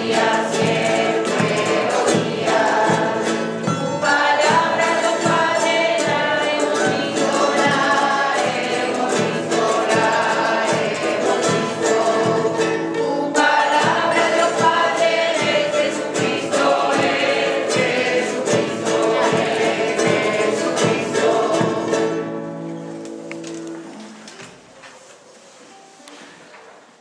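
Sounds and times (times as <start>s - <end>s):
mixed chorus singing: 0.0s - 22.6s
strummed acoustic guitars: 0.0s - 24.3s.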